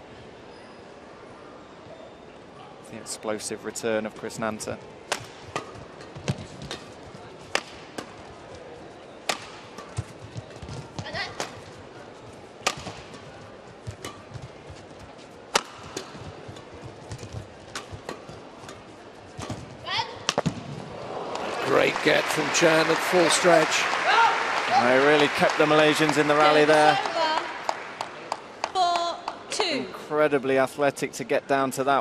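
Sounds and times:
rackets striking shuttlecock: 0:05.1 - 0:06.9, 0:07.5 - 0:08.2, 0:09.2 - 0:10.1, 0:12.6 - 0:13.2, 0:15.5 - 0:16.7
shoes squeaking on court: 0:05.4 - 0:20.3
crowd murmur: 0:20.8 - 0:29.9.

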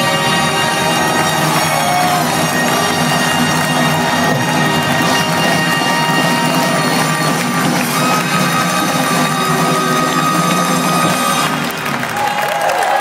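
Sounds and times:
long high held note: 0:00.0 - 0:11.8
rock band with horns playing: 0:00.0 - 0:12.4.

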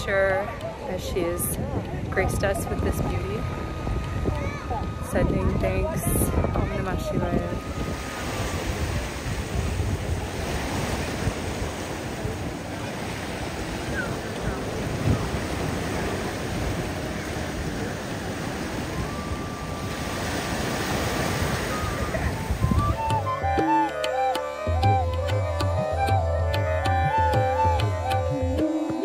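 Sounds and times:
wind buffeting microphone: 0:00.0 - 0:28.1
surf breaking over rocks: 0:07.5 - 0:24.4
music with drums: 0:22.7 - 0:29.0.

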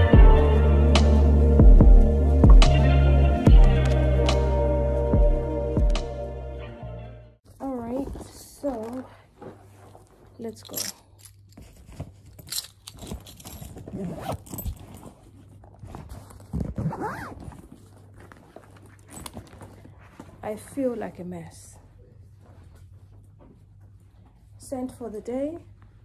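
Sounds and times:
rustling of packing: 0:07.5 - 0:26.0
bag zipper opening and closing: 0:10.4 - 0:19.8.

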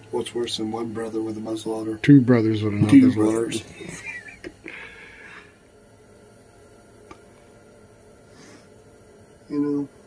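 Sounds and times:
person laughing: 0:02.8 - 0:04.6.

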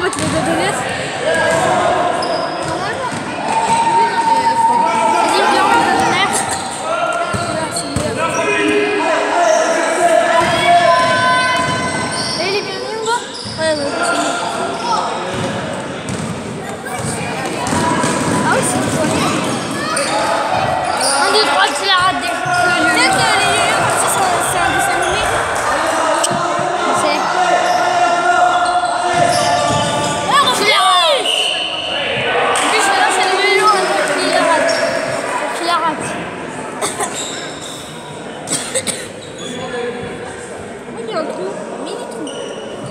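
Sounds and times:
basketball bouncing on court floor: 0:00.0 - 0:00.6, 0:15.3 - 0:20.7
players' voices echoing: 0:00.0 - 0:42.9
shoe squeaks: 0:11.6 - 0:15.1, 0:19.1 - 0:21.6, 0:37.0 - 0:38.2, 0:39.1 - 0:39.7, 0:42.1 - 0:42.9.

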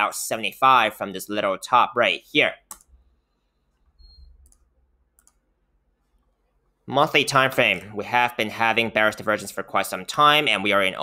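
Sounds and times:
computer mouse clicks: 0:02.7 - 0:03.0, 0:03.7 - 0:05.4.

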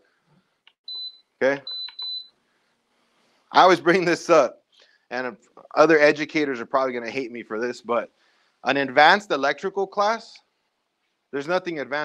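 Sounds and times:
high electronic beeps: 0:00.9 - 0:02.3.

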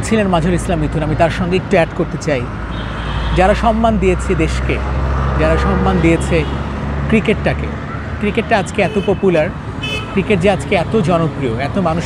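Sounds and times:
man talking: 0:00.0 - 0:02.6, 0:03.3 - 0:12.0
road traffic rumble: 0:00.0 - 0:12.0.

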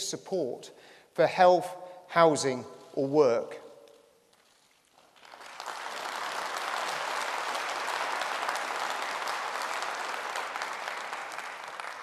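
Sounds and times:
audience applauding: 0:04.9 - 0:12.0.

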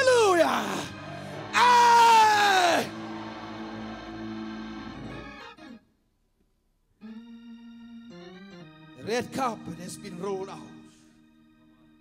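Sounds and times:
sustained organ chords: 0:00.0 - 0:06.2, 0:06.9 - 0:12.0.

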